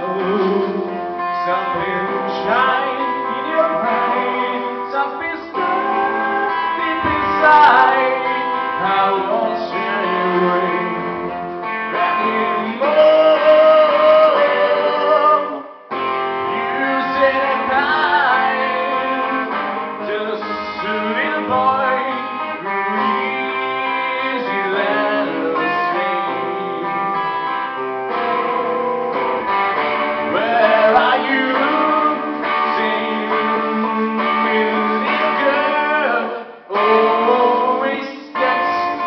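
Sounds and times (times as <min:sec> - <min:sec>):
man singing: 0:00.0 - 0:39.0
strummed acoustic guitar: 0:00.0 - 0:39.0.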